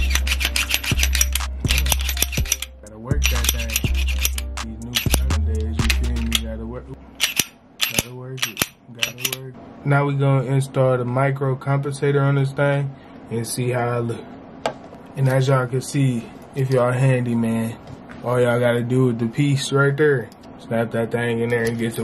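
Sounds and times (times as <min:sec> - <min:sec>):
deep bass line: 0:00.0 - 0:07.2.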